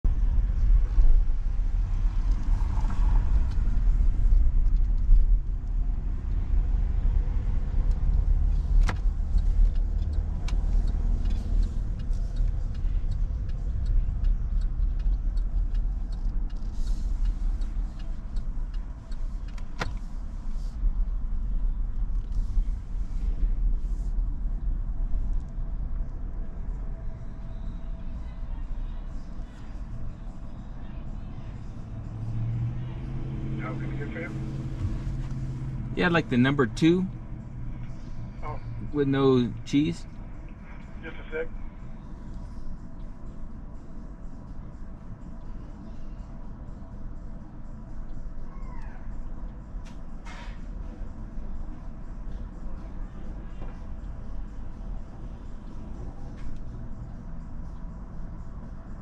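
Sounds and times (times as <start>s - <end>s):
car engine and tyres rumbling: 0.0s - 59.0s.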